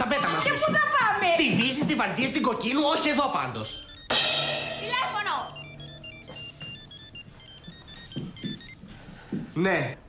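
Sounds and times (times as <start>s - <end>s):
phone ringtone beeps: 3.5s - 8.9s.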